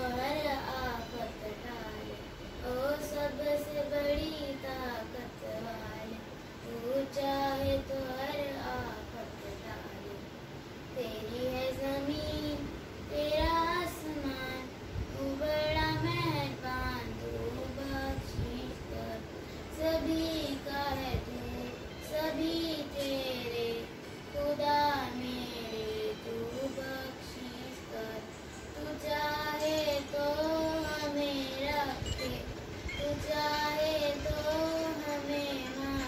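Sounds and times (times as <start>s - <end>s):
girl singing solo: 0.0s - 36.0s.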